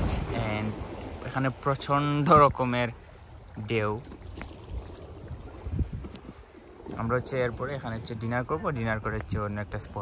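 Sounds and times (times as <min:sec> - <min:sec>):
low wind rumble on microphone: 0:00.0 - 0:10.0.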